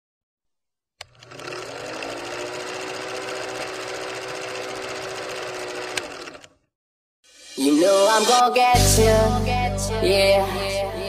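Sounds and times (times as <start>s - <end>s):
film projector rattle: 1.0s - 6.6s
motor hum: 1.0s - 6.6s.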